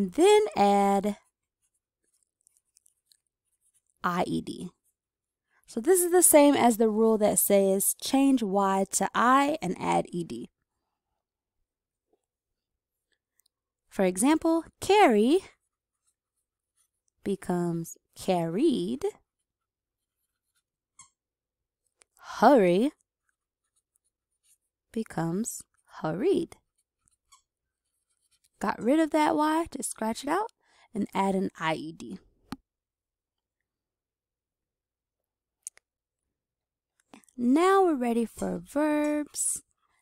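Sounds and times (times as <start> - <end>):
pen scratching on paper: 20.0 - 21.2, 26.5 - 28.6.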